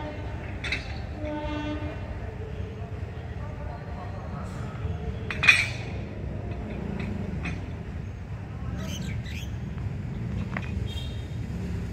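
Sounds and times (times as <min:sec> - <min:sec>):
locomotive horn blast: 0:01.1 - 0:02.1.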